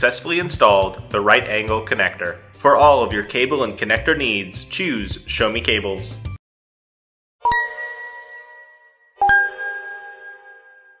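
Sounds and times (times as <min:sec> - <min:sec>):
two-note bell-like chime: 0:07.5 - 0:11.0.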